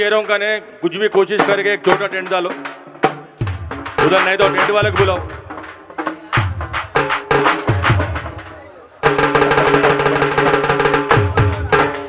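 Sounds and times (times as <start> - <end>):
frame drums beaten with sticks: 1.2 - 12.0
steady held tones: 3.4 - 9.2.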